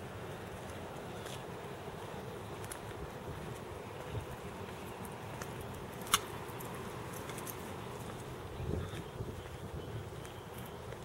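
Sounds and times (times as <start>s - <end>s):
outdoor background noise: 0.0s - 11.0s
footsteps on concrete: 0.4s - 11.0s.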